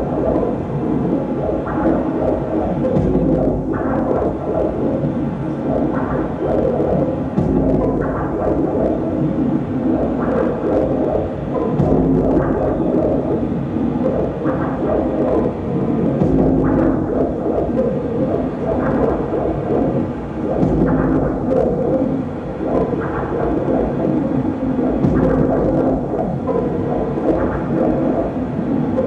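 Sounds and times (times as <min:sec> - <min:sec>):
electronic drone rumble: 0:00.0 - 0:29.0.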